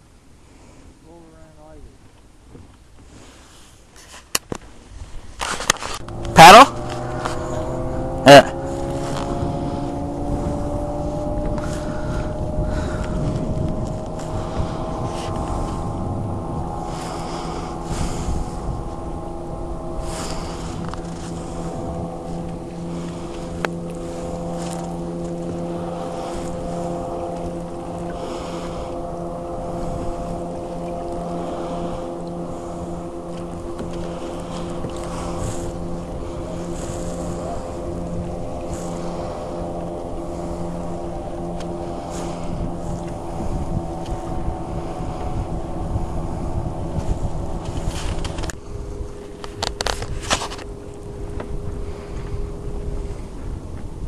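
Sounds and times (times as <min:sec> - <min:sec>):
steady engine drone: 0:00.0 - 0:03.8, 0:04.7 - 0:54.0
wind rumble on microphone: 0:04.4 - 0:54.0
kayak paddle splashes: 0:19.8 - 0:46.1.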